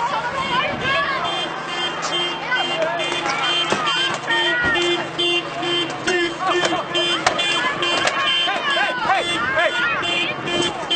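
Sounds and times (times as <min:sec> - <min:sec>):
people shouting: 0:00.0 - 0:10.9
car horn honking: 0:00.4 - 0:10.9.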